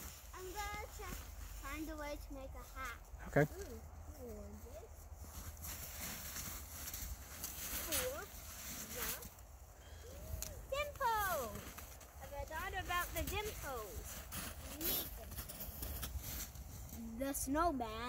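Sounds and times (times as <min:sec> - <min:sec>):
faint scuffs in snow: 0:04.2 - 0:17.4.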